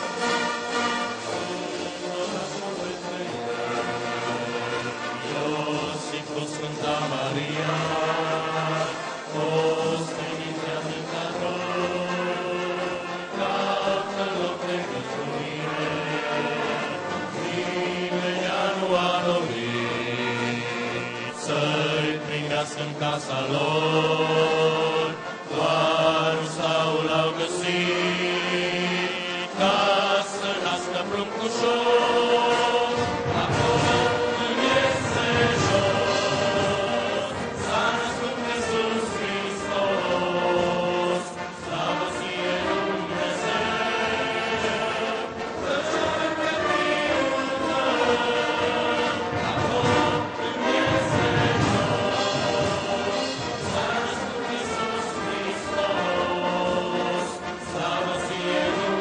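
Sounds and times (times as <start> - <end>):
brass band accompanying: 0.0 - 59.0
congregation singing a carol: 0.0 - 59.0.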